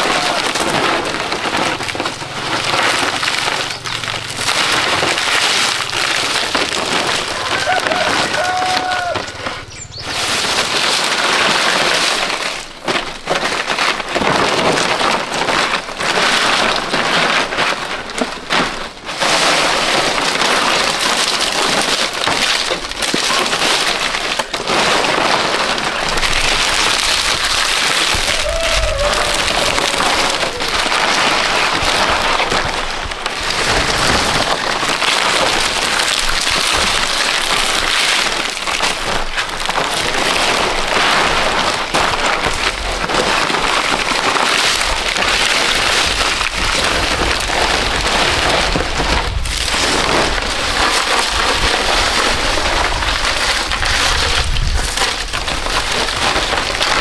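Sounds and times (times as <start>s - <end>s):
palm fronds rustling and crackling: 0.0s - 57.0s.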